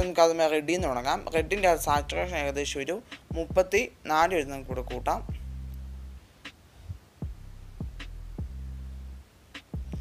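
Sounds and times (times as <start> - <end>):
soft low thuds: 0.8 - 2.4, 3.3 - 6.2, 6.9 - 9.2
deep held bass note: 4.2 - 6.2.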